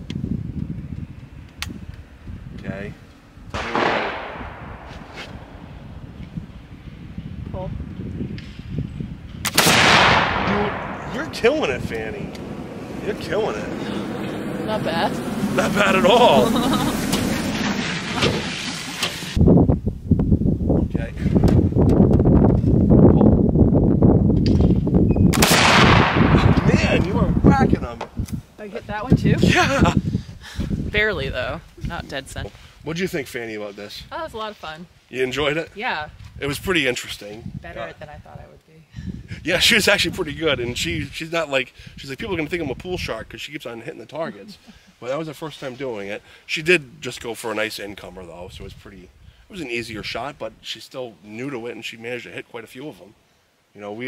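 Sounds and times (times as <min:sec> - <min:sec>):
wind rumbling on microphone: 0:00.0 - 0:43.4, 0:47.9 - 0:50.6
gunshot with echo: 0:03.6 - 0:05.6, 0:09.4 - 0:12.5, 0:25.3 - 0:27.4.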